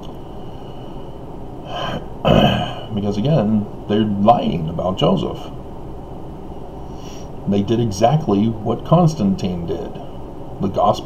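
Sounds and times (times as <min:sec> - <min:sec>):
low room background: 0:00.0 - 0:11.0
man gasping for breath: 0:01.6 - 0:02.9.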